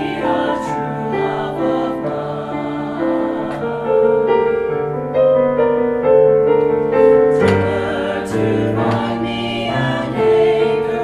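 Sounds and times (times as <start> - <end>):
mixed choir singing in harmony: 0.0 - 5.1, 6.8 - 11.0.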